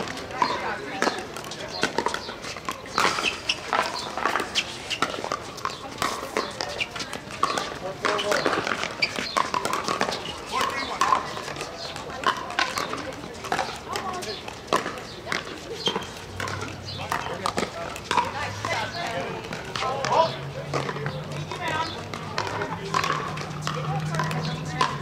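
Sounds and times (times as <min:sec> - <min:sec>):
chatter of players' voices: 0:00.0 - 0:25.0
paddles striking plastic balls: 0:00.0 - 0:25.0.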